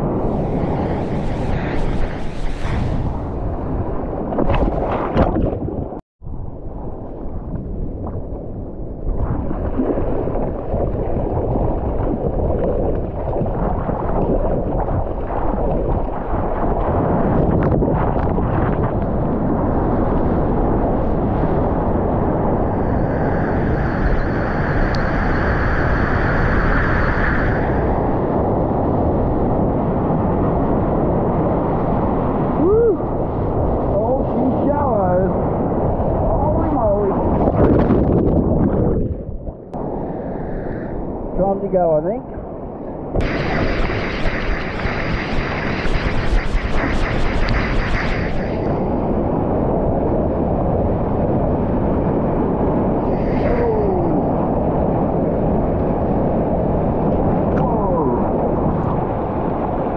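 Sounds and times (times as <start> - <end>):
wind on microphone: 0.0 - 59.9
water rushing: 43.2 - 49.0.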